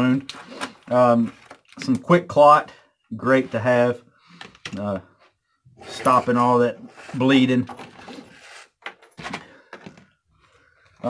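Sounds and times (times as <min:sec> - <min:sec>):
items laid on wooden workbench: 0:07.0 - 0:10.2.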